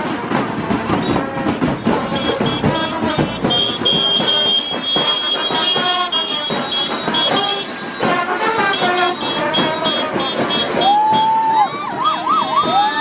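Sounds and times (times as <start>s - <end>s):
parade band music: 0.0s - 12.8s
siren wailing: 10.7s - 13.0s.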